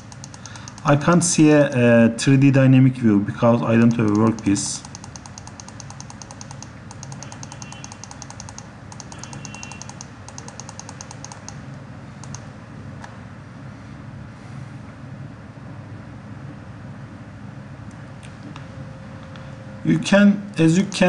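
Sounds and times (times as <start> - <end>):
fast electronic ticking: 0.0 - 1.1, 3.8 - 11.6
low background hum: 0.0 - 21.0
mouse click: 3.9 - 11.6, 12.2 - 12.5.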